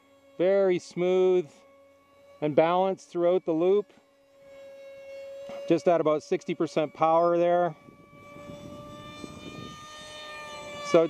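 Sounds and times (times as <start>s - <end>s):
electric motor and propeller whine: 0.0s - 11.0s.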